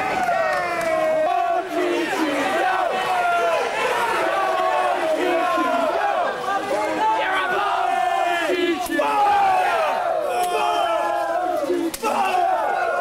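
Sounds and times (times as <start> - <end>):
crowd shouting and yelling: 0.0 - 13.0.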